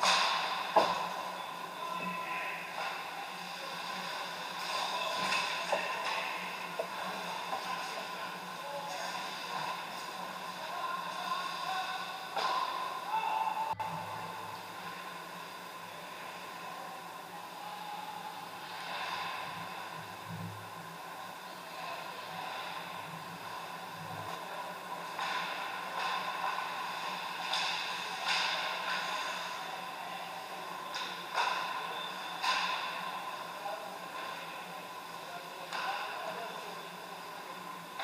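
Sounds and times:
hockey sticks hitting puck: 0.0 - 1.4, 3.8 - 8.2, 8.9 - 13.3, 24.3 - 29.4, 30.8 - 34.7, 35.6 - 36.2.

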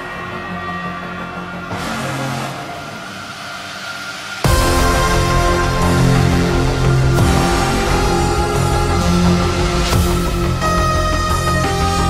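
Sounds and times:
drum and bass breakdown: 1.7 - 12.0.

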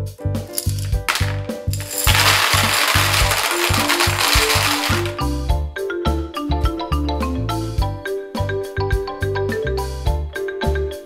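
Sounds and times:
candies clattering into plastic tub: 0.5 - 5.3.

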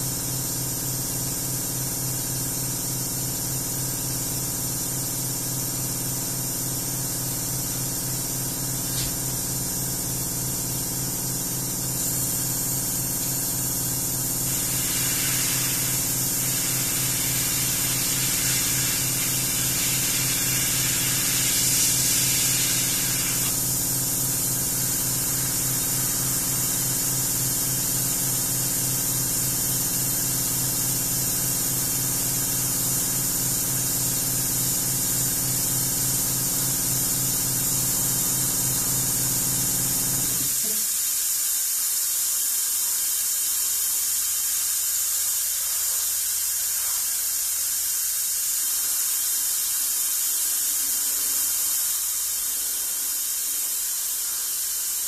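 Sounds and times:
airbrush hissing: 6.9 - 30.8, 37.1 - 55.0.

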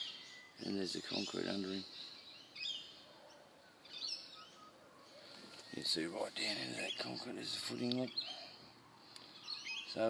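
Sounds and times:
birds chirping: 0.0 - 10.0
faint outdoor noise: 0.0 - 10.0.

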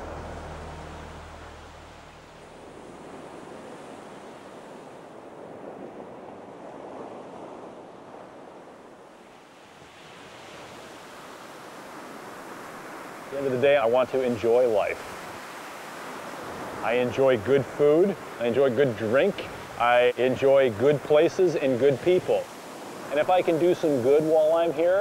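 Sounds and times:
ocean surf breaking: 0.0 - 25.0.

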